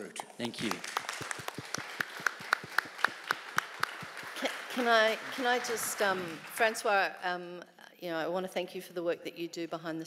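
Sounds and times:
light applause: 0.4s - 6.9s.

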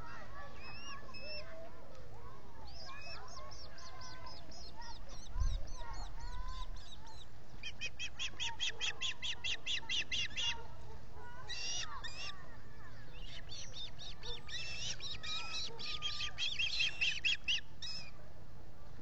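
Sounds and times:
ospreys chirping: 2.7s - 10.6s, 13.1s - 18.1s.

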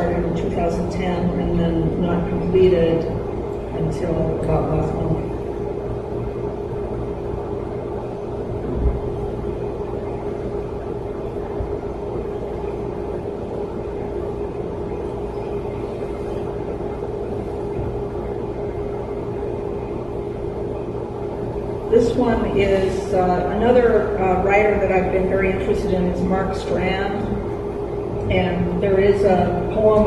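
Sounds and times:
low rumble and hum: 0.0s - 30.0s
steady pitched tone: 0.0s - 30.0s.

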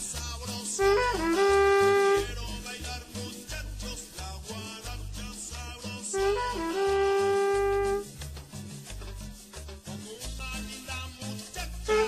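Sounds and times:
salsa backing track: 0.0s - 12.0s
trumpet playing short figure: 0.7s - 2.5s, 6.1s - 8.2s.

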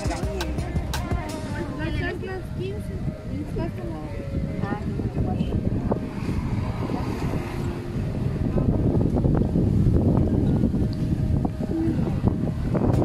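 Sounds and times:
faint voices in background: 0.0s - 12.8s
wind buffeting microphone: 0.0s - 13.0s.

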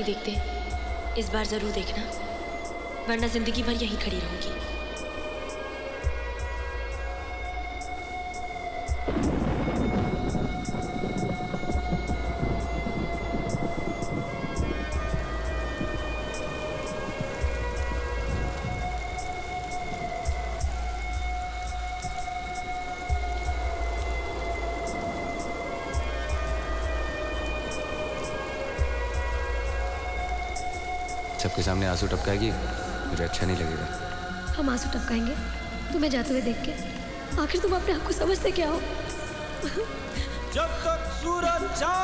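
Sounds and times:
film score held tones: 0.0s - 42.0s
steady rain: 0.0s - 42.0s
low rumbles: 5.8s - 41.9s.

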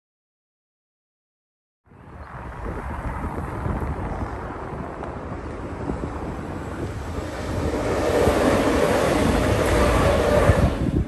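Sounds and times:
wind buffeting microphone: 1.9s - 11.0s
electric train passing: 2.0s - 11.0s.

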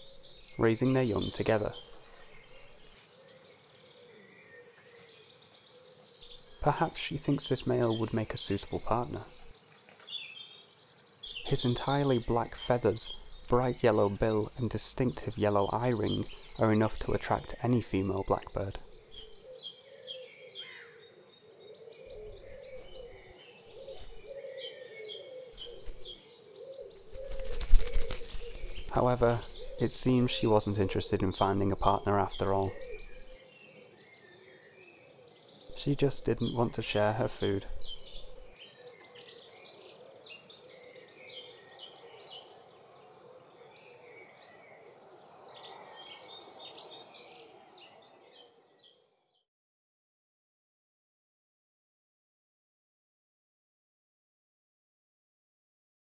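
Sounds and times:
low repeating bird call: 0.0s - 48.8s
small birds chirping: 0.0s - 49.4s.

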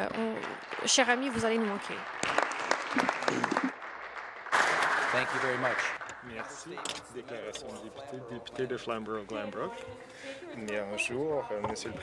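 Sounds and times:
audience applauding: 0.4s - 7.1s.

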